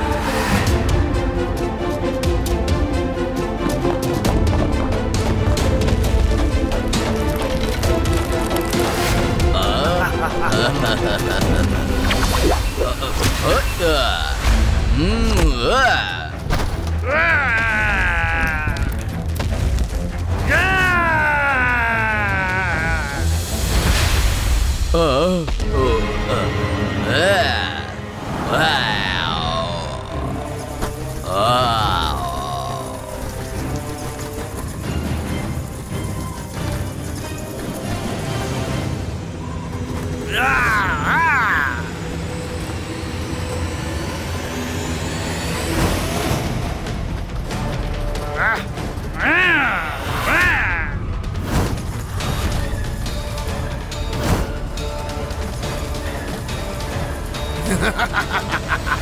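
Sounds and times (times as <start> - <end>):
background music: 0.0 - 59.0
cartoon character crying out: 40.3 - 41.9.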